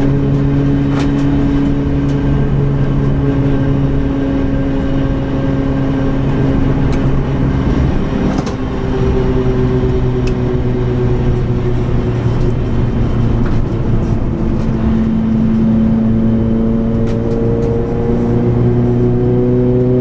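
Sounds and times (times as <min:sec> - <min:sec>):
clicks and rattles inside car: 0:00.0 - 0:03.2
car engine at high revs: 0:00.0 - 0:20.0.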